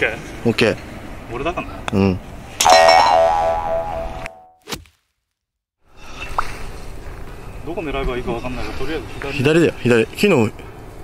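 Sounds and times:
faint outdoor background noise: 0.0s - 4.2s, 5.8s - 11.0s.

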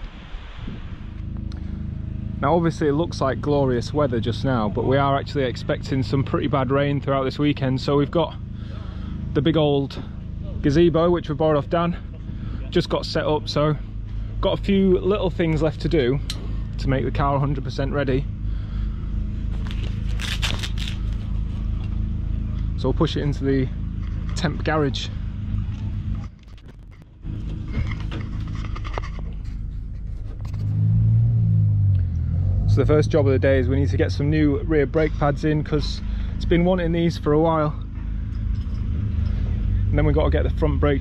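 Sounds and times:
wind buffeting microphone: 0.0s - 1.2s
engine idling: 1.1s - 30.8s, 31.9s - 41.0s
crackling scraping noise: 19.5s - 22.0s, 26.1s - 31.1s.

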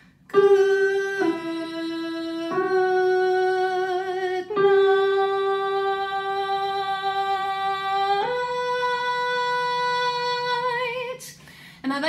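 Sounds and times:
woman singing: 0.3s - 12.0s.

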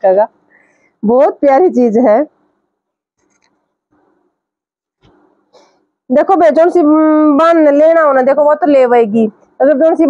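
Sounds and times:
woman speaking: 0.0s - 0.3s, 1.0s - 2.3s, 6.1s - 10.0s.

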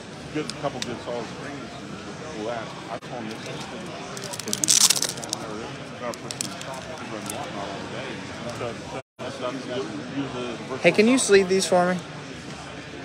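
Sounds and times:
crowd chatter: 0.0s - 13.0s
plastic packaging crinkling: 4.2s - 5.4s.

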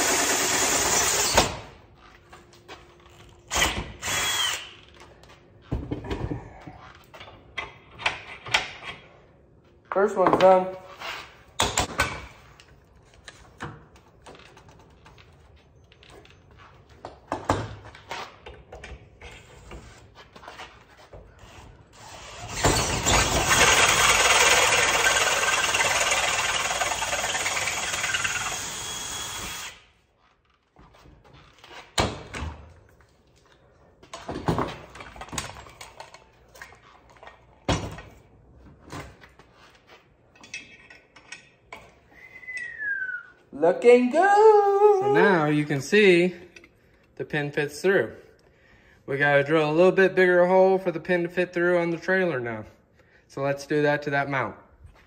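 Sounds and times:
cordless drill boring through metal: 0.0s - 1.5s, 3.5s - 4.7s, 22.0s - 29.8s
knocks and clicks of handled parts: 40.3s - 42.0s.

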